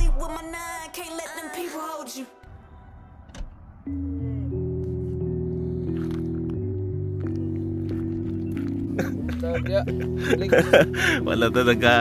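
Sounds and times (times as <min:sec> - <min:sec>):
sustained music chords: 0:02.4 - 0:12.0.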